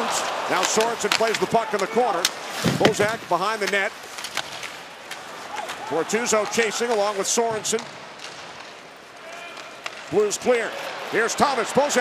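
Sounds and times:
arena crowd noise: 0.0s - 3.7s, 4.9s - 8.2s, 9.0s - 12.0s
hockey sticks and puck clacking: 0.0s - 12.0s.

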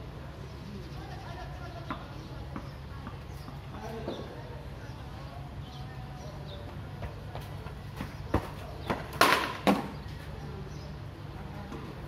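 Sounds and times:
cricket bat hitting ball: 8.9s - 10.0s.

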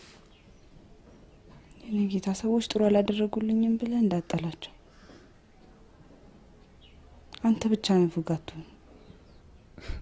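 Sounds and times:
woman speaking calmly: 1.7s - 4.8s, 7.3s - 8.8s.

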